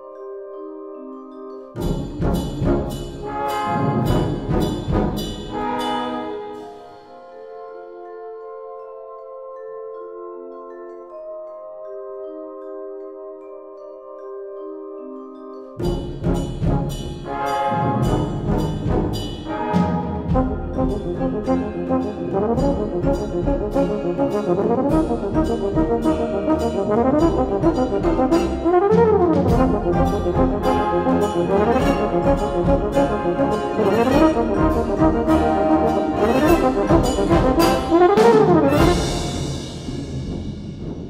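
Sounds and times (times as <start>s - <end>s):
brass band playing: 1.8s - 6.8s, 16.2s - 41.0s
sharp percussion accents: 1.8s - 6.8s, 15.8s - 41.0s.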